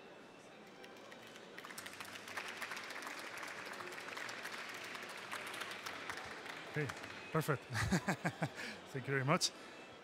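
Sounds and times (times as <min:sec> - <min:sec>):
audience applauding: 0:00.8 - 0:07.5.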